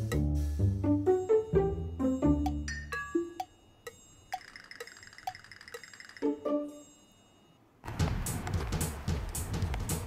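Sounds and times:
clock tick-tock sound effect: 2.0 - 6.8.

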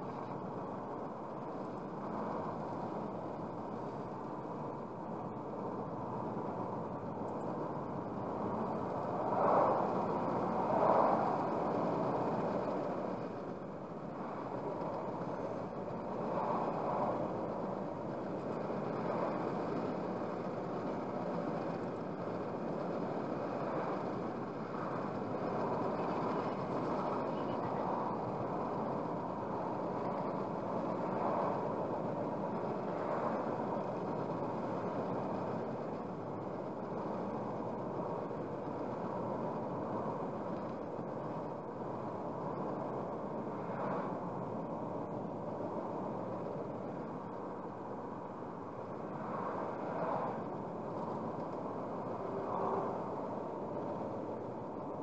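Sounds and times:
car road noise: 0.0 - 55.0.

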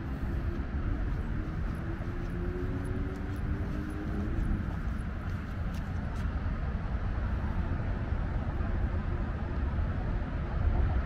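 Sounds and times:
low rumble of road traffic: 0.0 - 11.0
passing vehicle drone: 0.0 - 11.0.

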